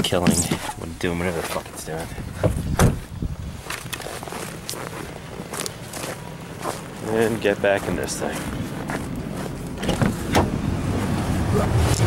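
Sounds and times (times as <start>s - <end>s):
running car rumble: 0.0s - 12.0s
car door knock: 2.4s - 3.0s
thud: 2.4s - 3.0s.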